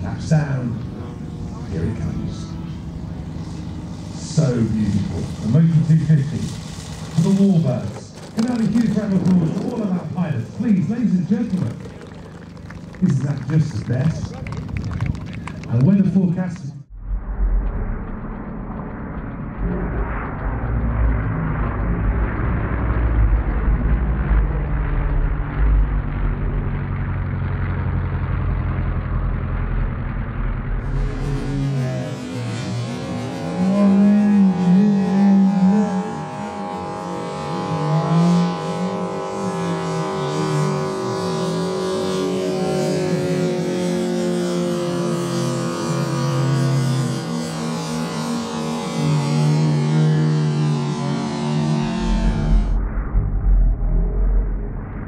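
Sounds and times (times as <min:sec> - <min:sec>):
model aircraft engines flying past: 0:00.0 - 0:55.0.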